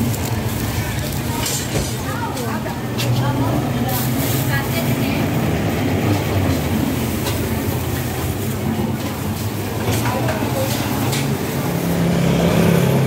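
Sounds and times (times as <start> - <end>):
scattered voices: 0.0 - 13.0.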